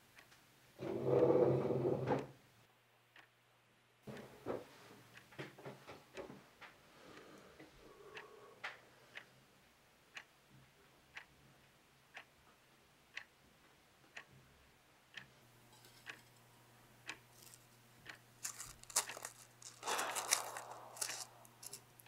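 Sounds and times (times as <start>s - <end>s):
clock ticking quietly: 0.0s - 1.3s, 2.4s - 22.0s
dried plants crumbling by hand: 18.4s - 21.8s.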